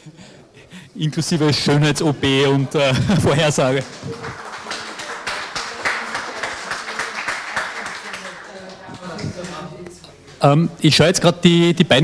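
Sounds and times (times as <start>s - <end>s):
small audience clapping: 2.8s - 9.7s.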